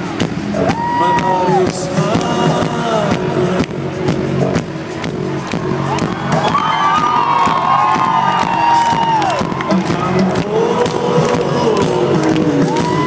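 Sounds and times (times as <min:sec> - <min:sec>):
crowd cheering and shouting: 0:00.0 - 0:02.7, 0:05.2 - 0:13.0
electronic rock band playing: 0:00.0 - 0:13.0.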